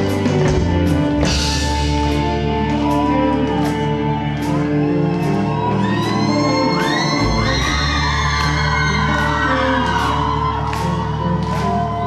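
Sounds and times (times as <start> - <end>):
drum kit with cymbals: 0.0 - 2.6
bass guitar: 0.0 - 12.0.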